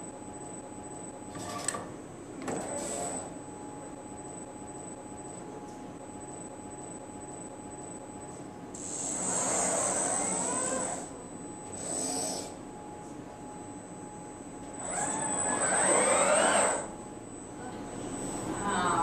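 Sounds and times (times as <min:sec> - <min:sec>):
robotic arm servo motors whirring: 0:08.8 - 0:11.1, 0:11.8 - 0:12.6, 0:14.8 - 0:16.9.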